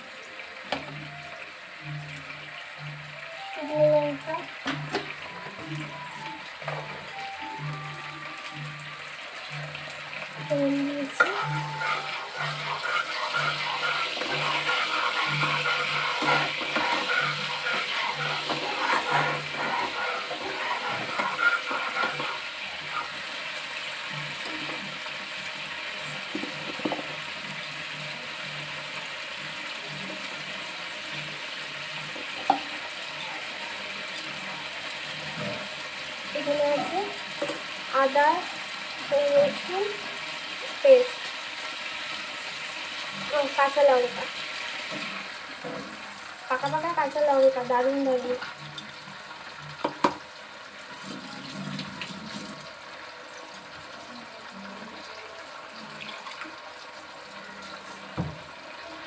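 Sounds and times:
food sizzling in hot oil: 0:00.0 - 0:59.0
spatula scraping a frying pan: 0:11.1 - 0:23.6.

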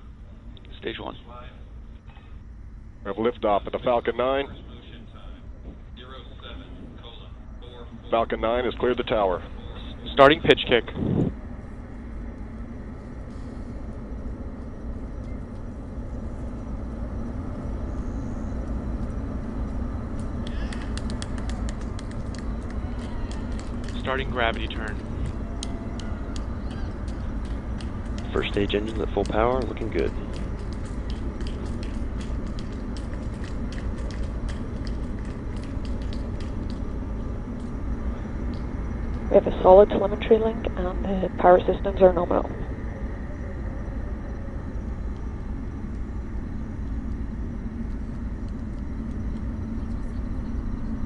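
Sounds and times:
rocket engine rumble: 0:00.0 - 0:51.0.

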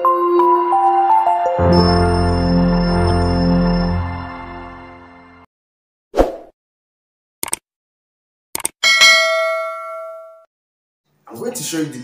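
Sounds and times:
quick bursts of clicks: 0:07.4 - 0:07.6, 0:08.6 - 0:08.8
bell ding: 0:08.8 - 0:10.5.

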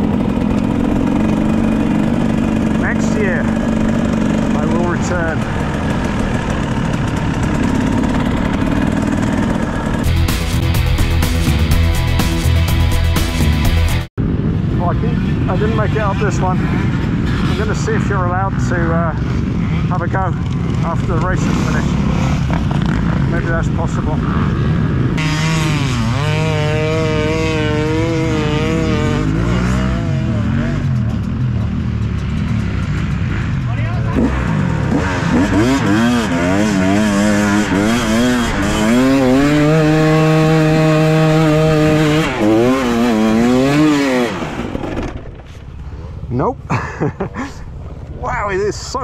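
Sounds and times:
dirt bike engine revving: 0:00.0 - 0:49.0.

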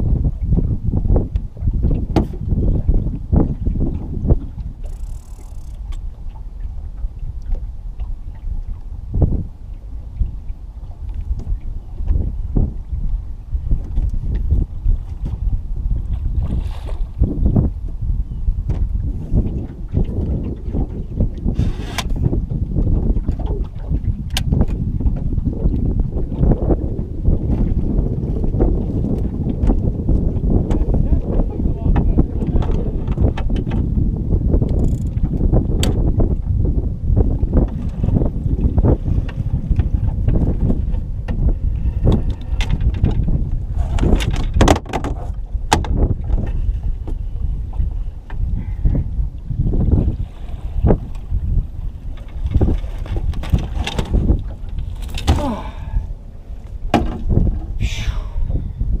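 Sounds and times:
wind rumbling on microphone: 0:00.0 - 0:59.0
landing net knocking against boat: 0:56.9 - 0:57.6.

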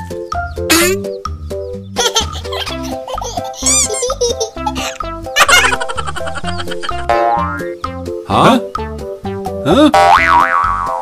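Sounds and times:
upbeat children's music: 0:00.0 - 0:11.0
cartoon springy boings: 0:06.8 - 0:07.8, 0:09.8 - 0:11.0.

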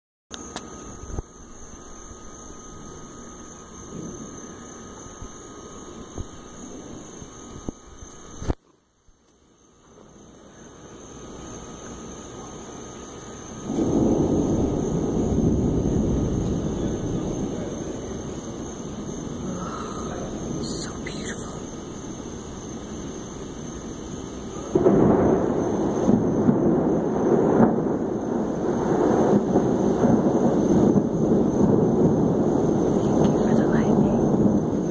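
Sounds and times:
background hiss: 0:00.3 - 0:34.9
thunder rumble: 0:00.6 - 0:08.6, 0:09.9 - 0:34.9.

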